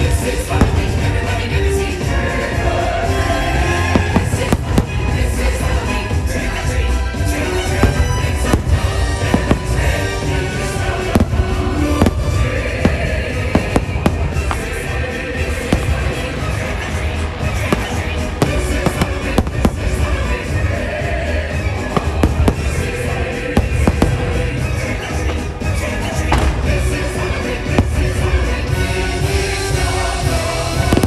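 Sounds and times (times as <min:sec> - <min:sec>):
fireworks bangs and crackles: 0:00.0 - 0:31.0
loud show music: 0:00.0 - 0:31.0.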